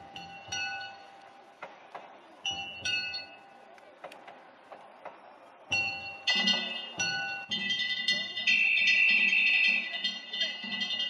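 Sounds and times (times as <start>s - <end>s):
small metal gongs ringing: 0.0s - 1.4s, 5.7s - 11.0s.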